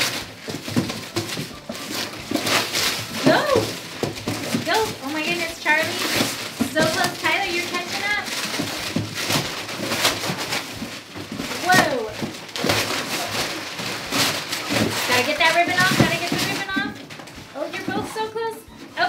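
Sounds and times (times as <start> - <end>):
paper tearing and crinkling: 0.0 - 19.0.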